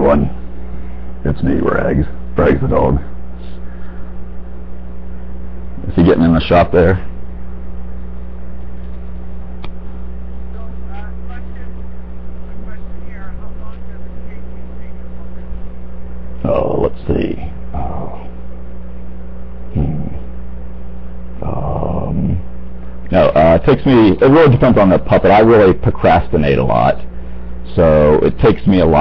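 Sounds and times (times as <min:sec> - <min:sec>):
steady low hum: 0:00.0 - 0:29.0
man making dog-like growls: 0:17.7 - 0:18.3, 0:19.7 - 0:20.3, 0:21.4 - 0:22.5.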